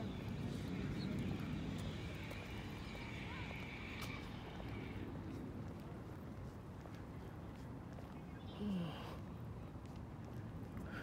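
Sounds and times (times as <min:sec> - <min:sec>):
faint distant voices: 0:00.0 - 0:06.2
steady low rumble: 0:00.0 - 0:08.6.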